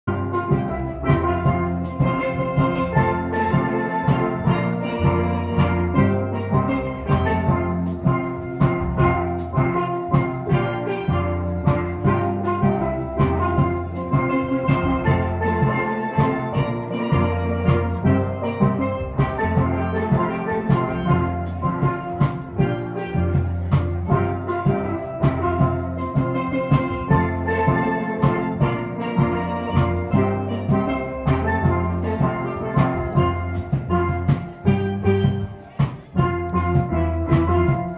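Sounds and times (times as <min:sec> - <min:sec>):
percussion beat: 0:00.0 - 0:37.9
steel pan ensemble playing: 0:00.0 - 0:37.9.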